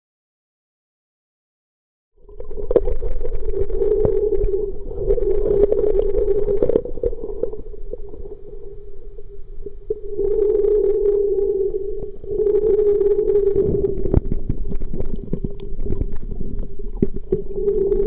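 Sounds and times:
muffled underwater droning hum: 2.2s - 18.0s
scattered clicks and pops: 2.3s - 8.4s, 9.6s - 18.0s.

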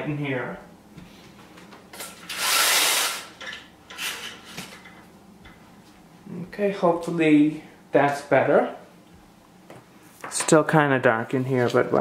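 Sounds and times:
window blinds being pulled: 2.0s - 3.3s.

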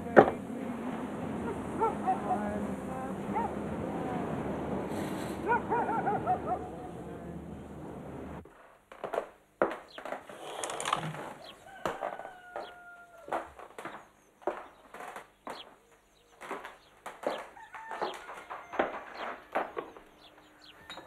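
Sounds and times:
birds calling: 0.0s - 8.4s, 9.4s - 21.0s.

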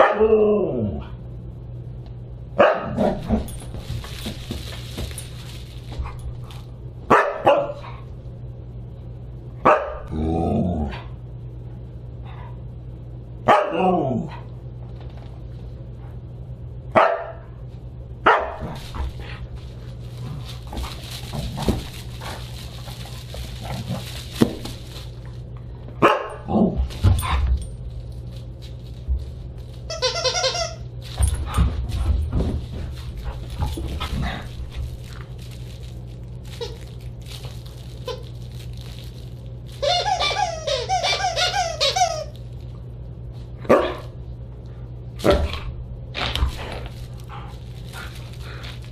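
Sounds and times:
dog barking: 0.0s - 0.2s, 2.6s - 3.1s, 7.1s - 7.9s, 9.6s - 10.1s, 13.4s - 13.9s, 16.9s - 17.6s, 18.2s - 18.6s, 26.0s - 26.5s, 43.7s - 44.1s
thuds of paws and toy on floor: 3.0s - 6.7s, 18.6s - 25.4s, 26.8s - 29.7s, 31.0s - 35.9s, 45.2s - 48.9s
dog barking and yipping: 7.1s - 7.9s, 18.2s - 18.8s, 26.0s - 26.5s.

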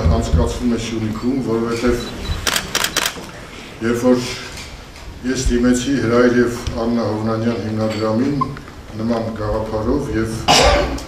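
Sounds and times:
sharp clicks: 2.4s - 3.4s.

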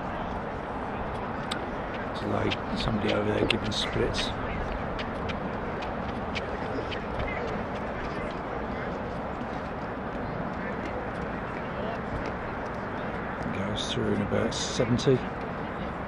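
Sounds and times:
faint distant voices: 0.0s - 16.0s
outdoor background noise: 0.0s - 16.0s.

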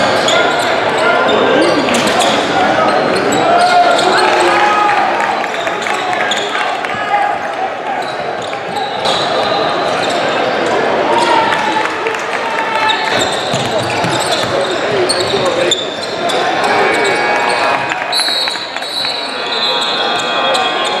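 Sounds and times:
voices of players and spectators: 0.0s - 21.0s.

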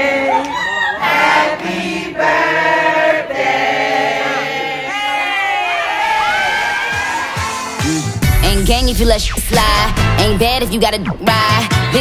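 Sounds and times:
choir singing in harmony: 0.0s - 4.9s.

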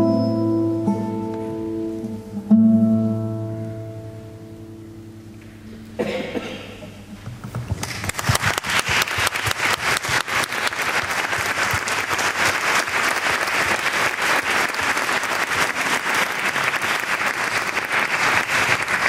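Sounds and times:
audience applauding: 7.7s - 19.0s.

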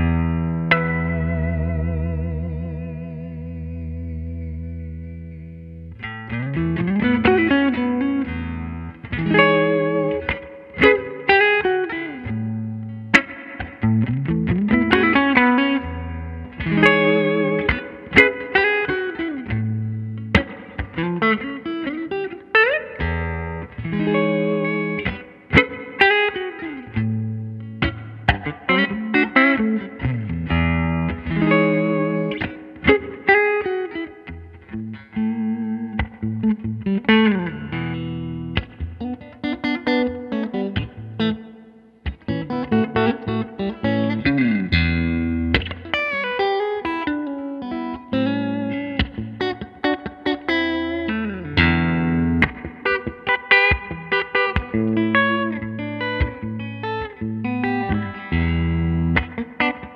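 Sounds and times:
clean electric guitar playing: 0.0s - 59.9s.

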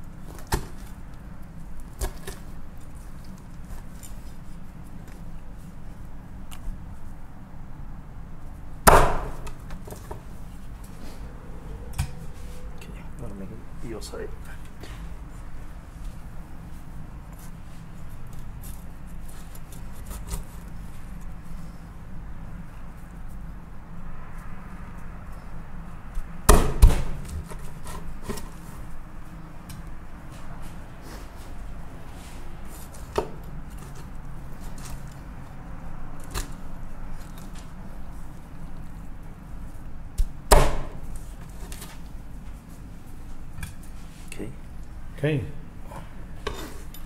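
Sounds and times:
low background hum: 0.0s - 47.0s
loud knocks on wooden board: 8.9s - 9.4s, 40.5s - 41.0s.

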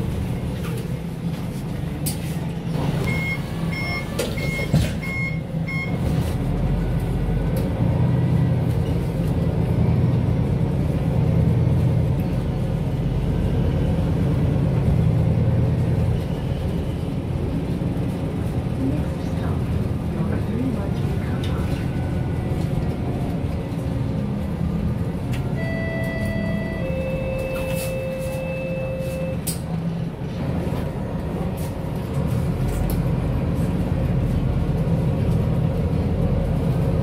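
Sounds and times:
bus diesel engine pulling away: 0.0s - 37.0s
short high beeps: 25.6s - 29.4s.

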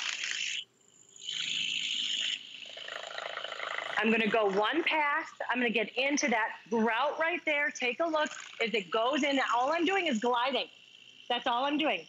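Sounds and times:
power scrubber buzzing on tile: 8.2s - 12.0s.

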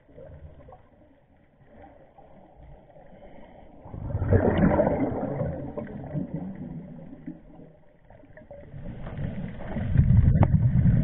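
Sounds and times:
underwater exhale bubbling: 3.1s - 11.0s.

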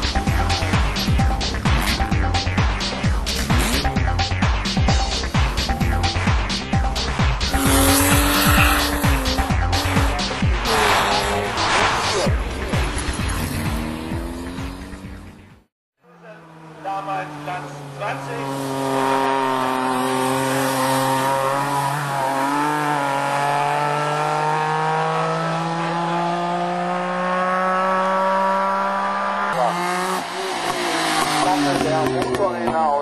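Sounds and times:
racing car engine at high revs: 7.1s - 15.5s, 16.3s - 33.0s.

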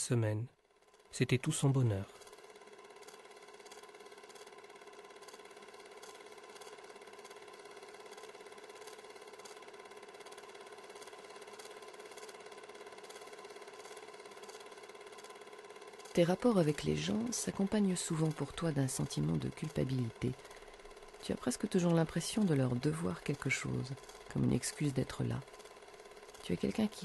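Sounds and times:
film projector motor hum: 0.0s - 27.0s
projector mechanical clatter: 0.7s - 27.0s.

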